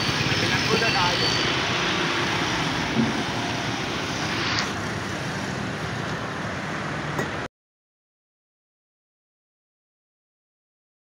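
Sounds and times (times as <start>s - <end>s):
road traffic roar: 0.0s - 7.5s.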